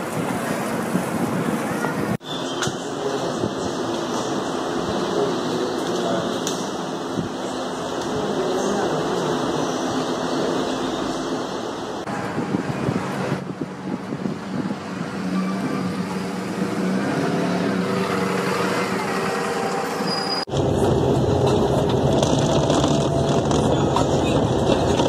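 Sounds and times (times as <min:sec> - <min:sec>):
engine and road rumble inside bus: 0:00.0 - 0:25.0
street traffic: 0:00.0 - 0:25.0
bus engine running: 0:02.8 - 0:25.0.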